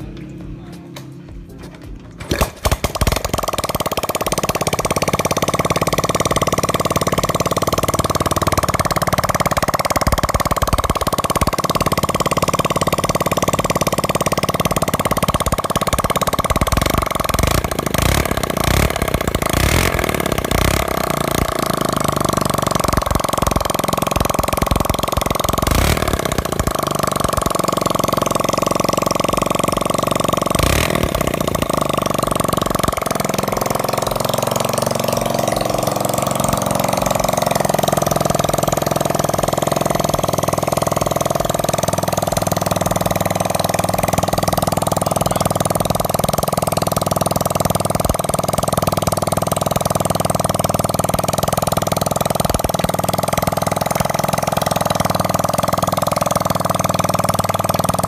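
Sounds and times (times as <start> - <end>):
motorcycle engine idling: 0.0 - 58.0.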